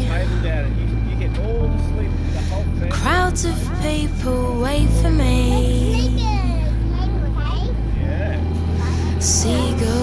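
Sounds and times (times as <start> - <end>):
sustained bass notes: 0.0 - 10.0
person singing: 9.2 - 10.0.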